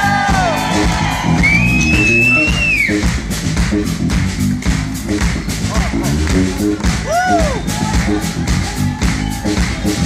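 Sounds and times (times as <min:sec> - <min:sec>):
electric bass notes: 0:00.0 - 0:10.0.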